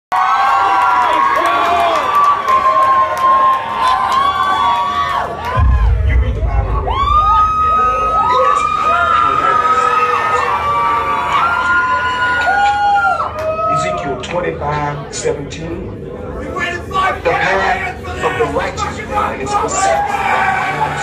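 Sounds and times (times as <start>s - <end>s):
people clapping: 0.1s - 5.6s
crowd cheering and screaming: 0.1s - 14.0s, 19.6s - 21.0s
deep rumble: 5.5s - 9.2s.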